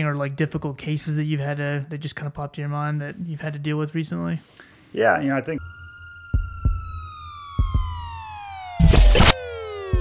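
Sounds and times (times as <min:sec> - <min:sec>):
heartbeat-style double thump: 0:06.4 - 0:08.1.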